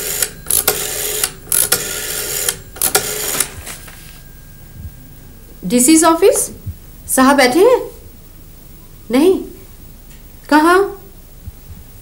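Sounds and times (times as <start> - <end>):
rotary telephone dial whirring clicks: 0.0 - 3.5.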